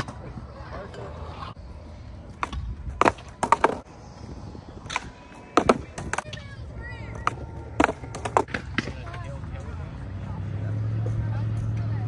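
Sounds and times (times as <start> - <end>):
skateboard clacking on concrete: 2.3 - 3.9, 4.9 - 6.5, 7.1 - 9.4.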